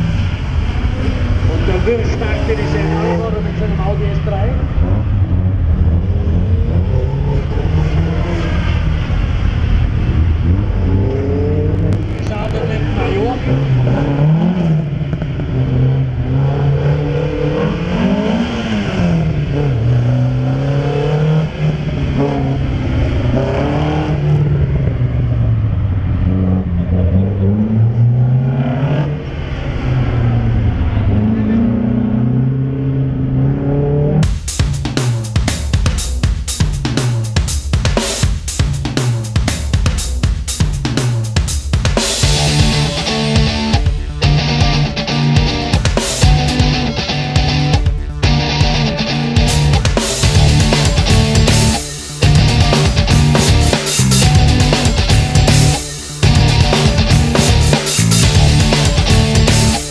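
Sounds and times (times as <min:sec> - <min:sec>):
car engines accelerating: 0:00.0 - 0:34.3, 0:42.2 - 0:59.9
drum beats: 0:34.2 - 0:59.9.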